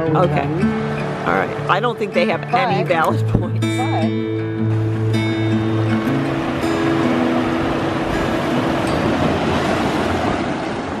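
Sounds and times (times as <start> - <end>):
guitar music: 0.0 - 11.0
waves washing onto beach: 0.0 - 11.0.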